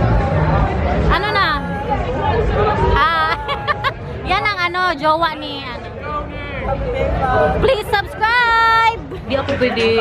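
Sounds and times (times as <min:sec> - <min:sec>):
street crowd babble: 0:00.0 - 0:10.0.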